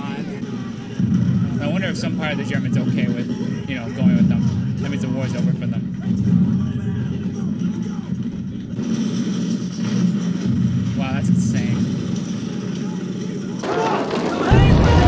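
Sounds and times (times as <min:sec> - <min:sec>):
soldiers shouting: 0:12.7 - 0:15.0
loud low rumble: 0:14.5 - 0:15.0.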